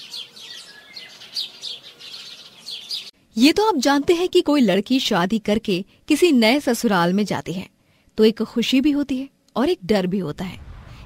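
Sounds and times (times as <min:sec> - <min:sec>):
small birds twittering: 0:00.0 - 0:03.2.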